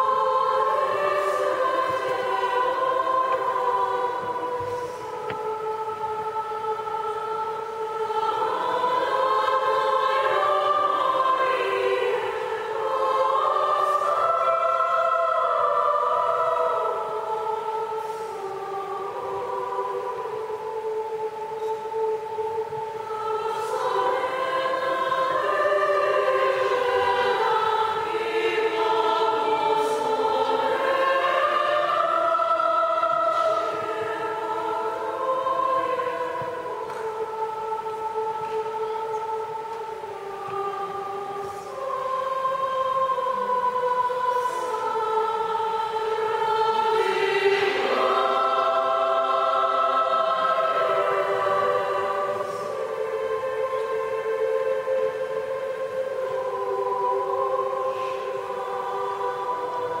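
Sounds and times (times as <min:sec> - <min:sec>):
girls' choir singing: 0:00.0 - 1:00.0.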